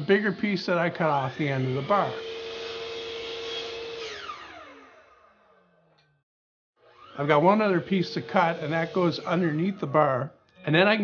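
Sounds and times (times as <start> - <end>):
table saw motor spinning down: 0.0 - 5.9, 6.8 - 10.2.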